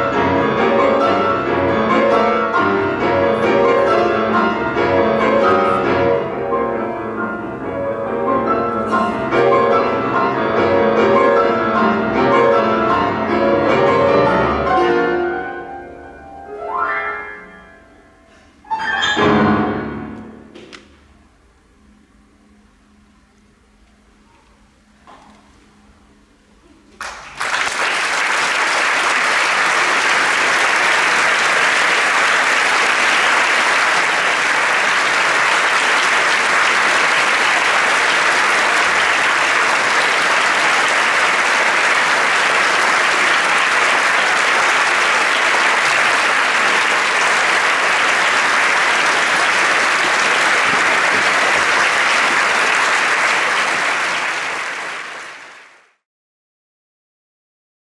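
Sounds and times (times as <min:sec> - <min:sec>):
large audience applauding: 0:08.6 - 0:10.2, 0:26.9 - 0:56.0.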